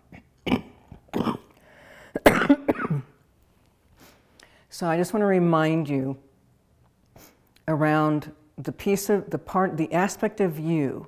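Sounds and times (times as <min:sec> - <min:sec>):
woman coughing: 0:00.5 - 0:01.5, 0:02.1 - 0:03.2.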